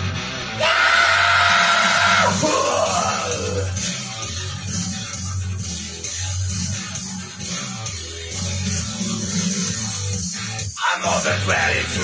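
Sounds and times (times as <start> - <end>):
rock backing track: 0.0 - 10.8
man screaming into a microphone: 0.6 - 3.7
man singing: 2.2 - 3.8, 10.8 - 12.0.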